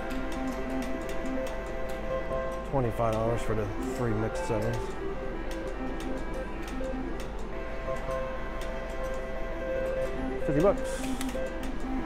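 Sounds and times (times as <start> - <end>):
slot machine reels clicking: 0.0 - 9.2.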